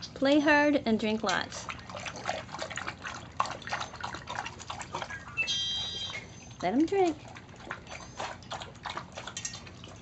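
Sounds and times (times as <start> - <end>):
puppies lapping water: 0.0 - 10.0.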